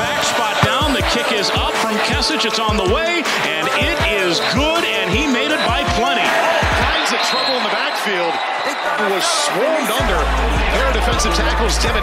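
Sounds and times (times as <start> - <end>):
hip-hop music: 0.6 - 7.3.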